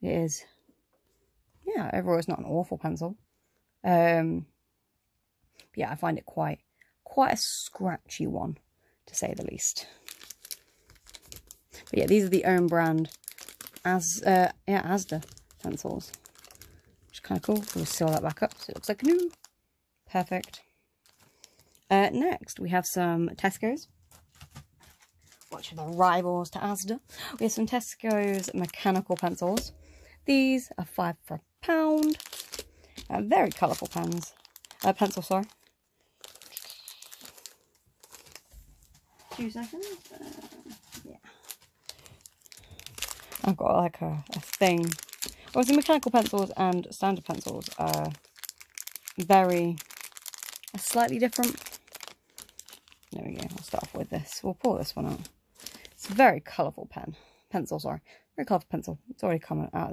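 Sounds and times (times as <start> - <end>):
packaging crinkling: 9.9 - 19.6, 20.2 - 21.9, 24.0 - 30.1, 31.6 - 56.2.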